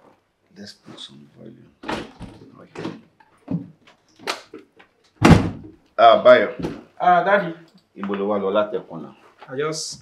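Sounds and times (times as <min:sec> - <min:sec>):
door knocks: 0:05.2 - 0:05.8.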